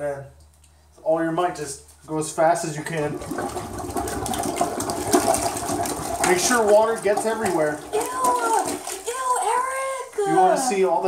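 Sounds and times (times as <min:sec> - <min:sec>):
plunger sloshing water in toilet: 0:02.8 - 0:09.9.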